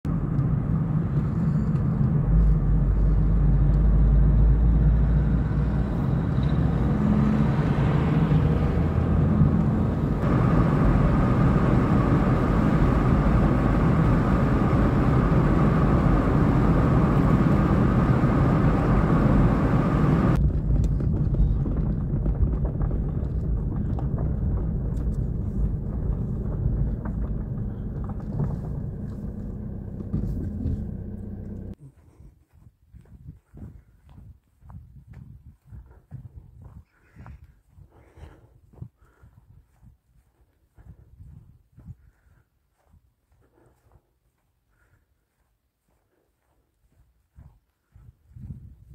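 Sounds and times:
car interior road noise: 0.1s - 31.8s.

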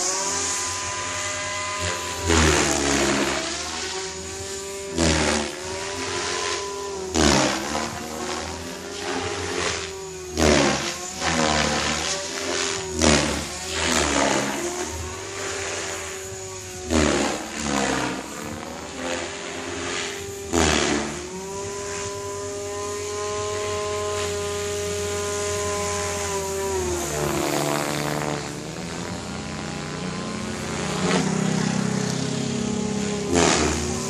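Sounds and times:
rc helicopter motor whine: 0.0s - 34.0s
rotor blades swishing: 0.0s - 34.0s.

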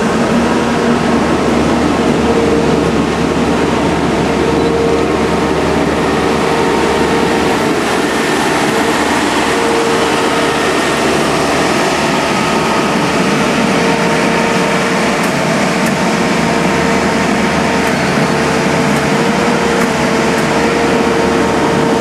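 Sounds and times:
maintenance machine engines running: 0.0s - 22.0s
steady whine: 0.0s - 22.0s.

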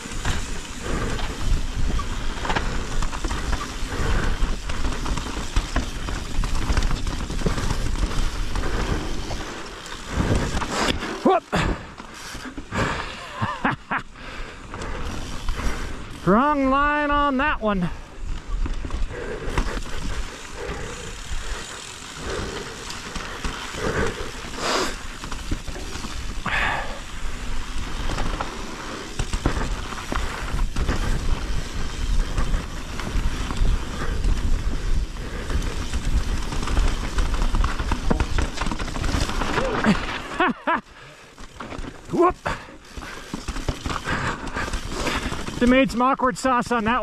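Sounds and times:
bike knocks and rattles: 0.0s - 11.1s, 18.3s - 40.8s, 41.4s - 45.8s
bike tyres rolling over stones: 0.0s - 47.0s
person laughing: 12.8s - 14.2s, 39.6s - 40.9s.

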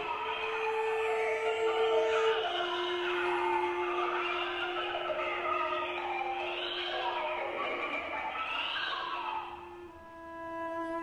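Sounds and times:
cello holding notes: 0.0s - 8.5s, 9.1s - 11.0s.

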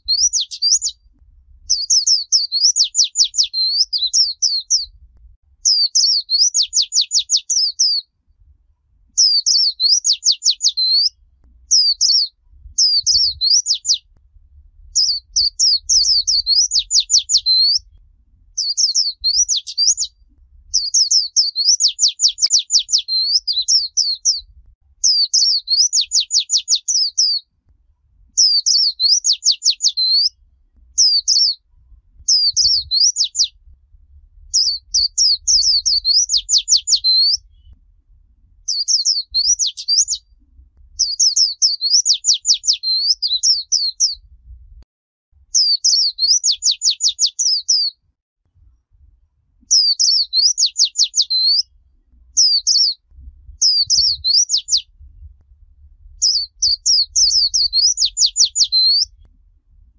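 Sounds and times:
bird singing warbled trills: 0.0s - 1.0s, 1.7s - 4.9s, 5.6s - 8.0s, 9.2s - 14.1s, 14.9s - 17.9s, 18.6s - 27.4s, 28.4s - 31.6s, 32.3s - 33.6s, 34.5s - 37.8s, 38.7s - 40.2s, 41.0s - 44.2s, 45.6s - 47.9s, 49.7s - 51.7s, 52.4s - 53.0s, 53.6s - 54.9s, 56.2s - 59.2s.

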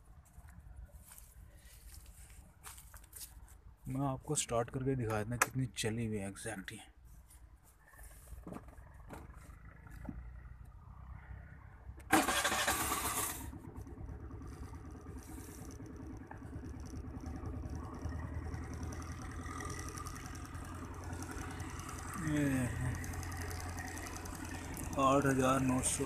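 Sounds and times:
scooter engine idling: 7.9s - 26.0s
scooter engine starting: 12.0s - 26.0s.

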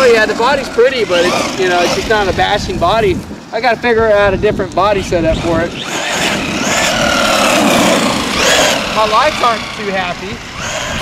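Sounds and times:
toy truck electric motor whine: 0.8s - 2.4s, 5.4s - 11.0s.

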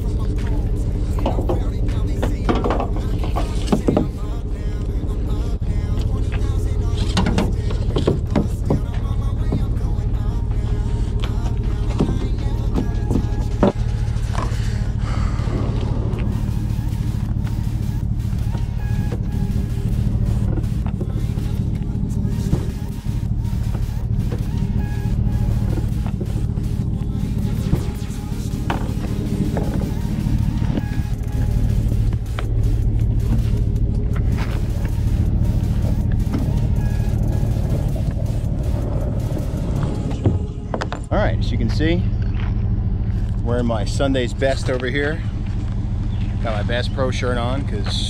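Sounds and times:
background music with low drone: 0.0s - 48.0s.

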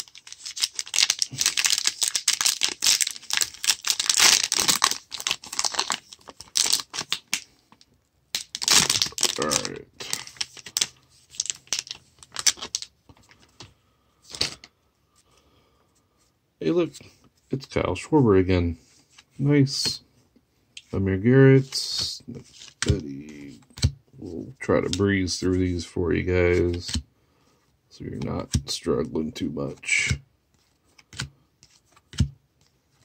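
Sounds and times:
plastic wrapper crinkling: 0.0s - 13.4s.

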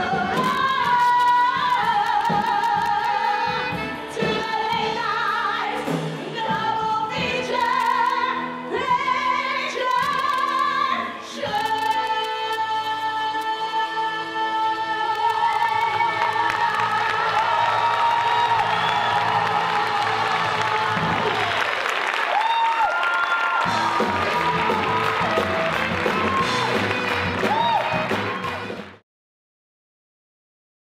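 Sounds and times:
audience applause and cheering: 15.2s - 29.0s.

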